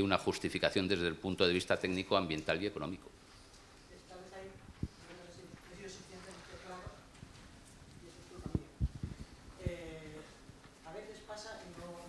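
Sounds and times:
room hiss: 0:00.0 - 0:12.0.

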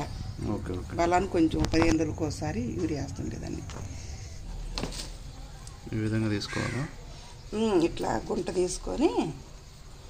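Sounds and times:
crow cawing: 0:06.4 - 0:07.0.

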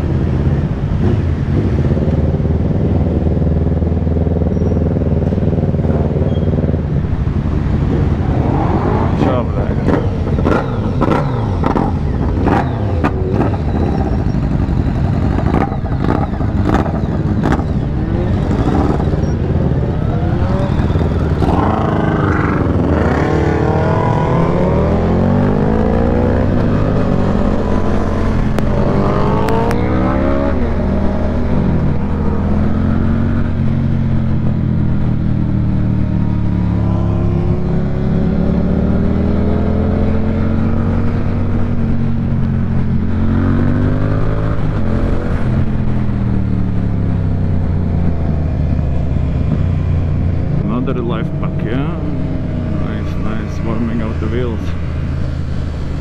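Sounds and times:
motorcycle engine accelerating: 0:00.0 - 0:56.0.

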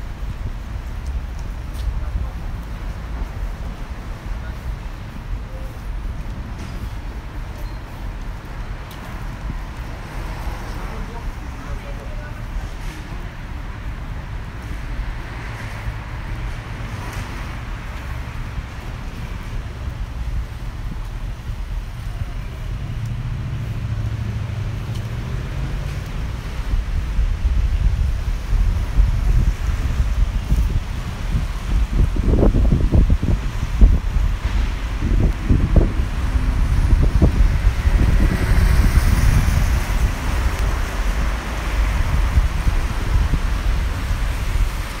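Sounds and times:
car tyres hissing on wet road: 0:00.0 - 0:45.0
road traffic on wet street: 0:00.0 - 0:45.0
wind buffeting the microphone: 0:00.0 - 0:45.0.

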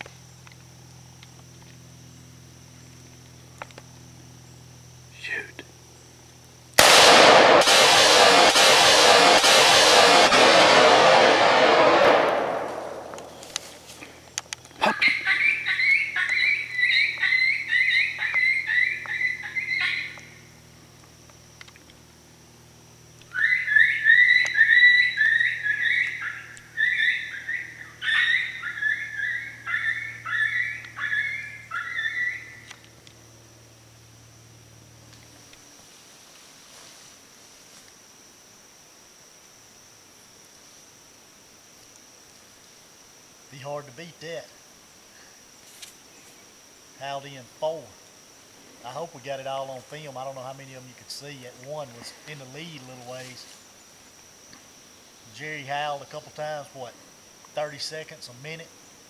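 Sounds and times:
loud rushing noise: 0:06.8 - 0:13.4
coyote yips and howls: 0:14.8 - 0:20.4, 0:23.3 - 0:32.7.

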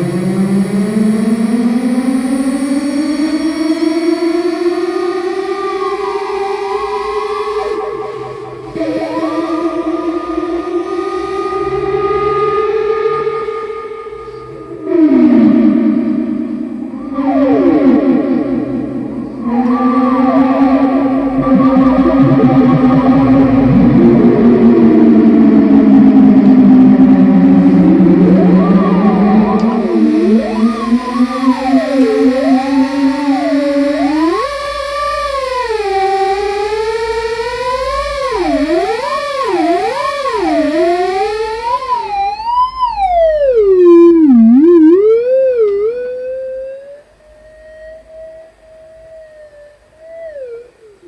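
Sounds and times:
gliding synthesizer tone: 0:00.0 - 0:51.0
steady low drone: 0:00.0 - 0:51.0.

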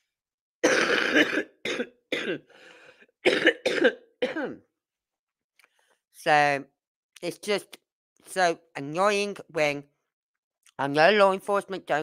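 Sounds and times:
person coughing: 0:00.6 - 0:02.5, 0:03.2 - 0:04.7.

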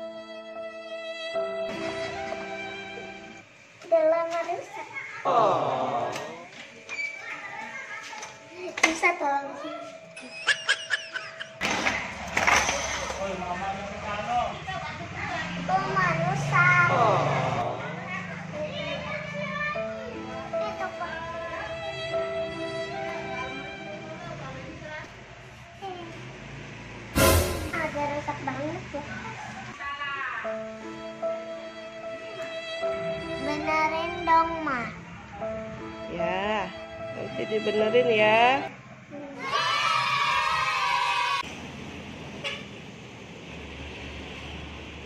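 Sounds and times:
young child talking and exclaiming: 0:03.8 - 0:05.5, 0:07.1 - 0:10.6, 0:14.8 - 0:21.8, 0:24.1 - 0:26.3, 0:27.7 - 0:29.4, 0:33.4 - 0:35.0, 0:39.0 - 0:41.5.

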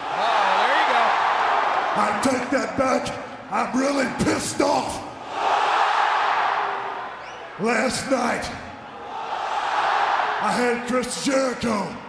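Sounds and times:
arena crowd cheering: 0:00.0 - 0:12.0.

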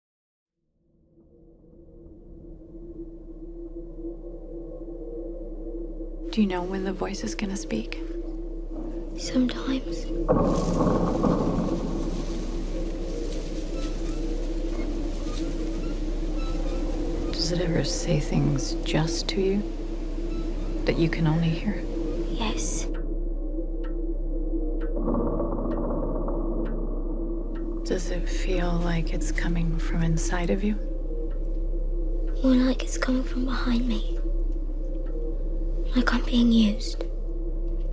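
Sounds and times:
deep rumble: 0:00.7 - 0:37.9
low drone tone: 0:00.7 - 0:37.9
clock ticking: 0:17.2 - 0:37.9.

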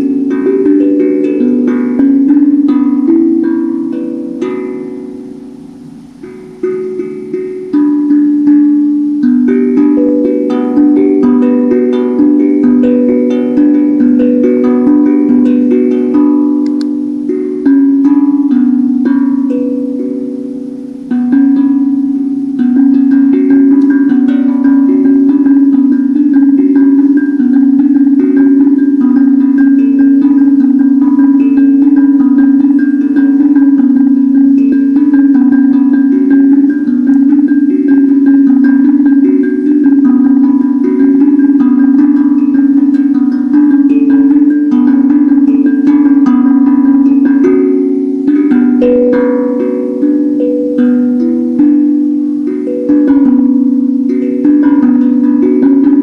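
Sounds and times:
handpan melody: 0:00.0 - 0:56.0.

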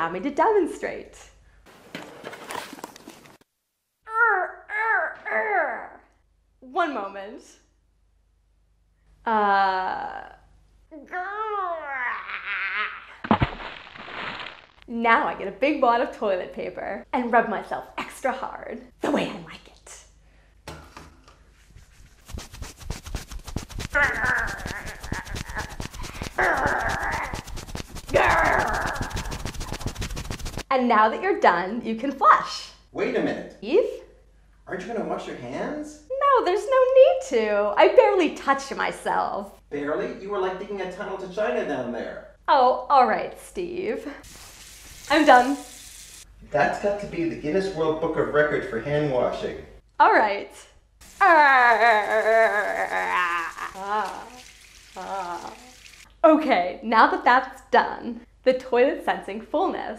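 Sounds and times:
rustling noise: 0:01.7 - 0:03.5, 0:21.4 - 0:30.7
toilet paper scratching: 0:21.4 - 0:30.7, 0:44.2 - 0:46.3
woman laughing: 0:51.2 - 0:54.3.

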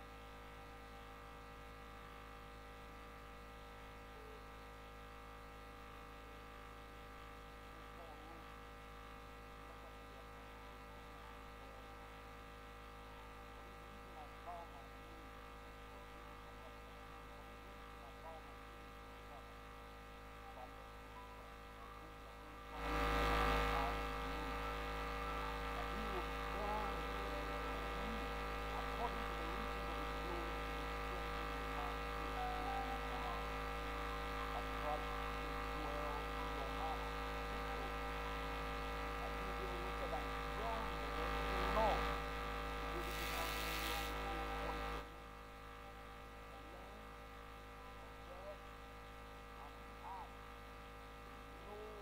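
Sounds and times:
electrical mains hum: 0:00.0 - 0:52.0.

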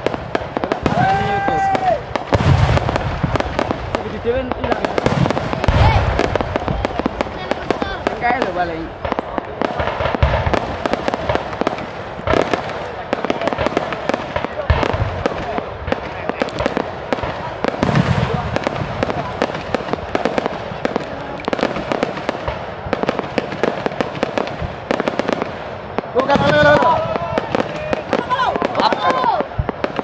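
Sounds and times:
faint voices: 0:00.0 - 0:30.0
firecrackers banging: 0:00.0 - 0:30.0.

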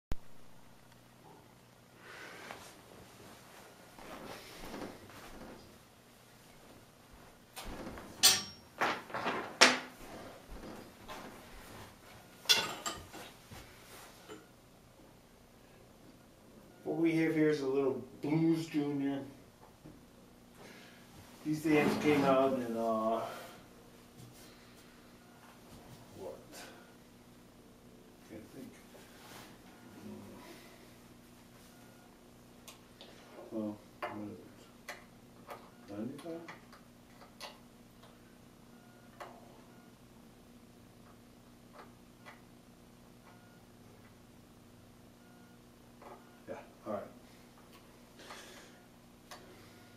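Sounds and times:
faint low hum: 0:00.2 - 0:49.9.

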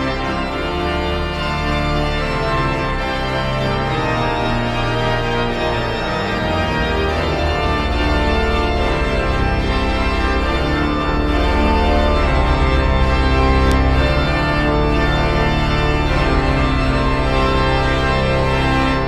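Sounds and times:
organ pedal bass line: 0:00.0 - 0:19.0
pipe organ chords: 0:00.0 - 0:19.0.

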